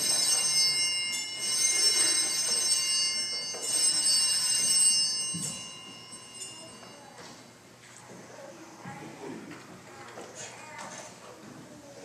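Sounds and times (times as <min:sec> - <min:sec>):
altar bells ringing: 0:00.0 - 0:07.6.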